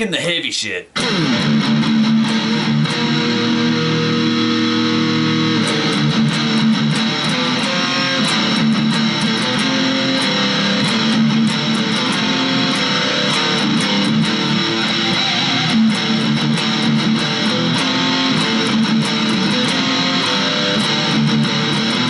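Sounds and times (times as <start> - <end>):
distorted electric guitar: 0.9 - 22.0.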